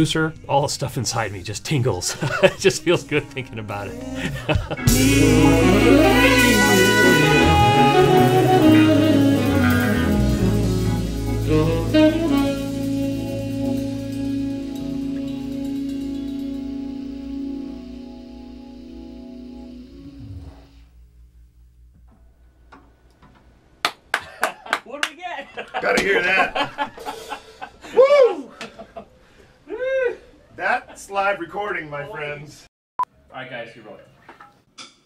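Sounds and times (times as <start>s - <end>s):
held band chord: 2.1s - 20.7s
live band with saxophone and drums: 4.7s - 17.6s.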